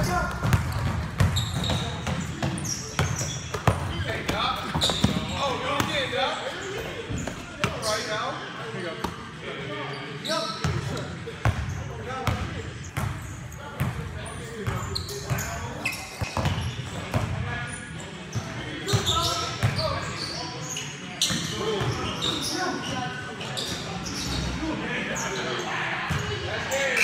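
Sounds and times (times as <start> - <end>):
basketball bouncing on court: 0.0 - 6.0.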